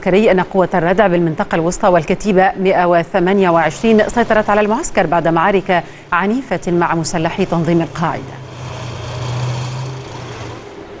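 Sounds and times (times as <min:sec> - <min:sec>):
tank engine humming: 0:03.2 - 0:11.0.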